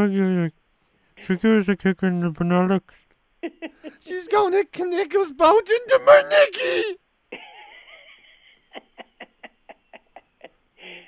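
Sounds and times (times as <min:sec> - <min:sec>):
person laughing over telephone: 0:06.1 - 0:11.0.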